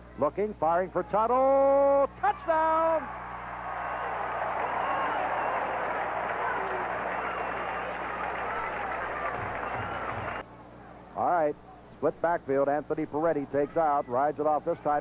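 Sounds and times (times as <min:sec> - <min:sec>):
stadium crowd cheering: 0:02.2 - 0:10.4.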